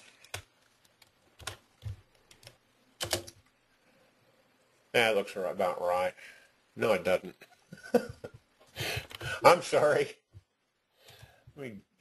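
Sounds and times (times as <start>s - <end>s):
keyboard and mouse clicks: 0.0s - 3.5s.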